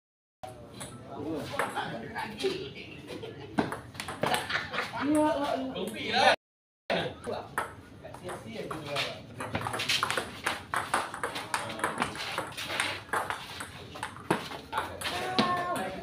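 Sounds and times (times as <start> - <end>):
table tennis ball hitting bats and table: 3.6 - 4.6, 7.3 - 16.0.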